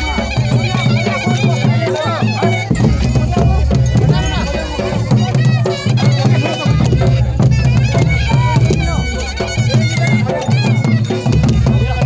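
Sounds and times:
crowd voices: 0:00.0 - 0:12.0
hand drums beating: 0:00.0 - 0:12.0
reed pipe melody: 0:00.0 - 0:12.0.

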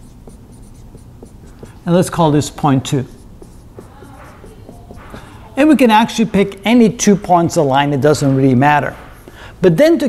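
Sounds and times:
marker scratching on whiteboard: 0:00.0 - 0:07.5, 0:08.1 - 0:09.3.

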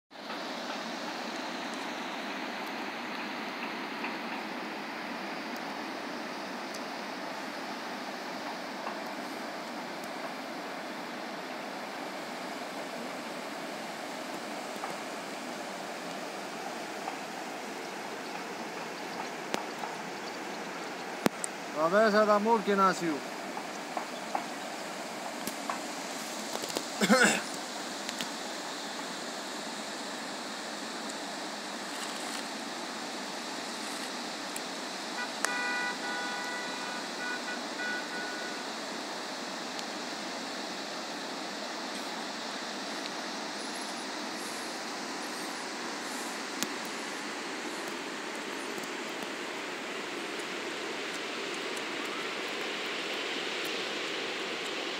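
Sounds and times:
river flowing over stones: 0:00.1 - 0:54.9.

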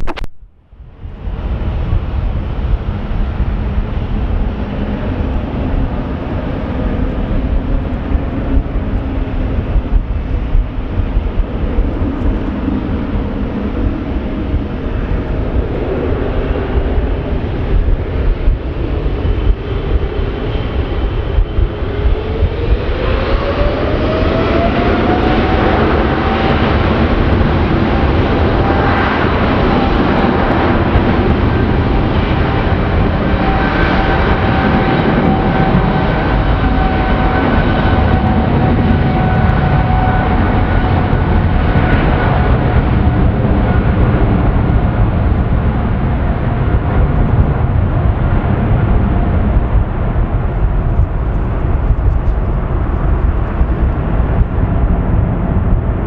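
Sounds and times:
jet engines at takeoff power: 0:00.0 - 0:56.0
rising engine whine: 0:00.0 - 0:56.0.

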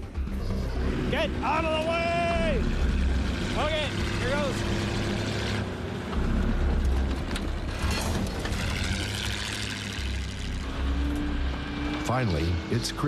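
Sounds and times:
tracked snowmobile engine rumbling: 0:00.0 - 0:13.0.

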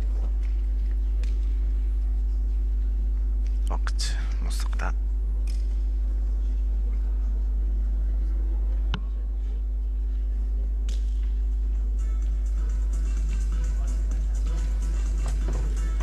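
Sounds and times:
low electrical hum: 0:00.0 - 0:16.0
faint hushed voices: 0:06.3 - 0:10.6.

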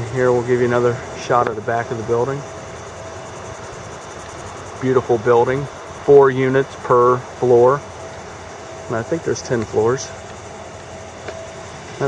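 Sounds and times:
thin steady whine: 0:00.0 - 0:12.0.

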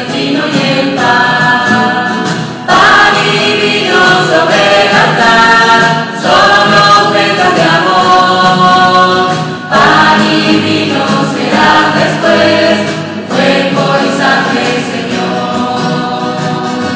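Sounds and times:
choir singing a hymn: 0:00.0 - 0:16.9
strummed acoustic guitars: 0:00.0 - 0:16.9.

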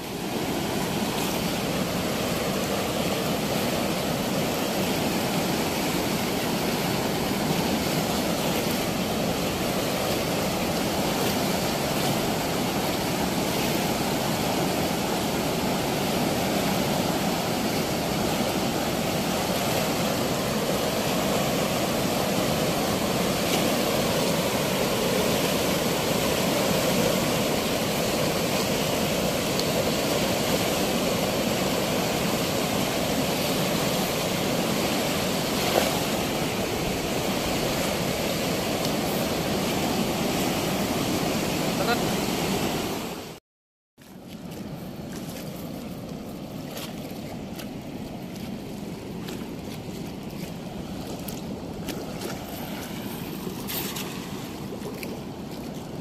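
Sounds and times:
water rushing through sluice gate: 0:00.0 - 0:43.4, 0:44.1 - 0:56.0.

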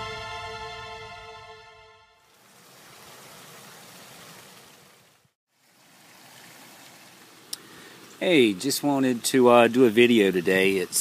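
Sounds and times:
faint hiss: 0:02.3 - 0:11.0.

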